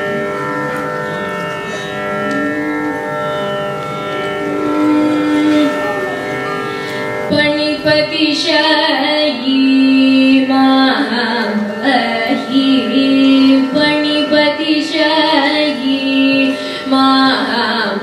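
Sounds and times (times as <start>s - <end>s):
tampura drone: 0.0s - 18.0s
violin: 0.0s - 18.0s
woman singing: 7.3s - 18.0s.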